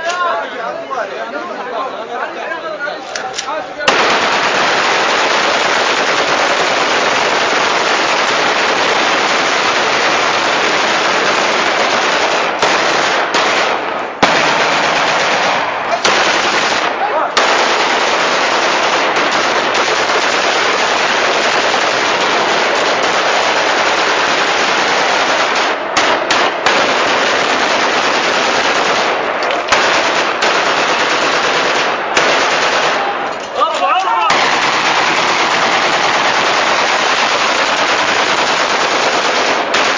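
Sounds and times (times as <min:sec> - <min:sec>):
rapid rifle fire: 0:03.9 - 0:33.3, 0:34.3 - 0:39.9.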